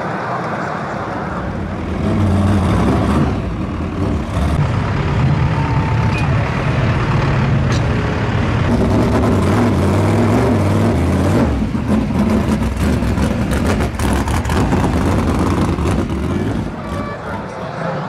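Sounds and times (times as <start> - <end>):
heavy vehicle engines running: 0.0 - 18.0.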